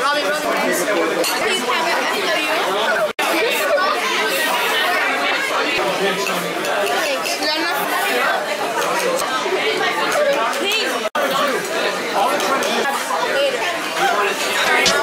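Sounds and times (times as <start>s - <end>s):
many overlapping voices talking: 0.0s - 15.0s.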